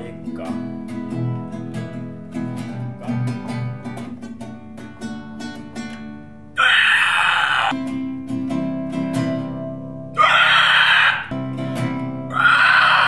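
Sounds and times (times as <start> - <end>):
classical guitar strumming: 0.0 - 6.6, 7.7 - 10.2, 11.3 - 12.4
loud wordless screams: 6.6 - 7.8, 10.2 - 11.4, 12.3 - 13.0.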